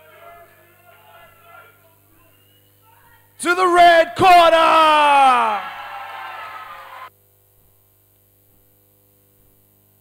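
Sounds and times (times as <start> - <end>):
faint mains hum: 0.0 - 10.0
announcer voice over pa: 3.4 - 5.7.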